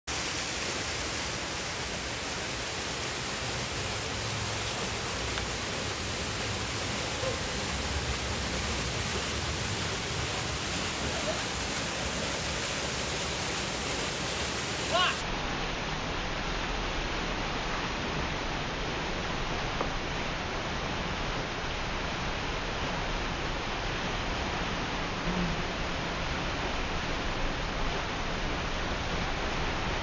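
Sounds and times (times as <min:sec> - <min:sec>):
waterfall pouring into a pool: 0:00.1 - 0:30.0.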